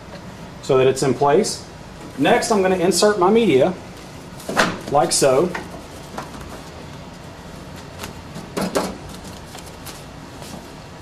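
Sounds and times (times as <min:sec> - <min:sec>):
steady low hum: 0:00.0 - 0:11.0
paper envelopes rustling and knocking: 0:04.4 - 0:06.8, 0:07.6 - 0:10.8.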